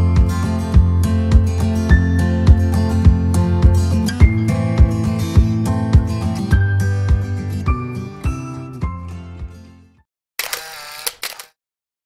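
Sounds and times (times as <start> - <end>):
camera shutter sound effect: 10.4 - 11.6.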